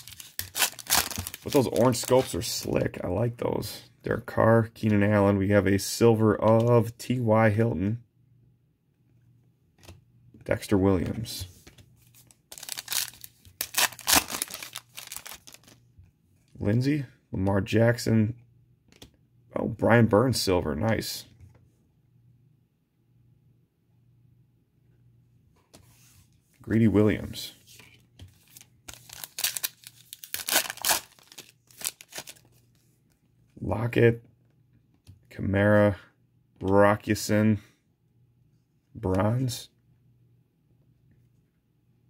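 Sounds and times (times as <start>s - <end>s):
foil pack tearing and crinkling: 0.0s - 2.1s, 12.5s - 15.8s, 28.9s - 32.4s.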